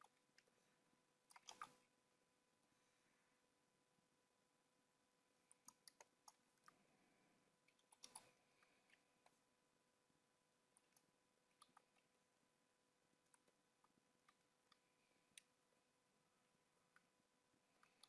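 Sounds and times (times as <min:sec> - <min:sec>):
computer mouse and keyboard clicks: 0:01.3 - 0:01.8, 0:05.6 - 0:06.8, 0:07.7 - 0:09.4.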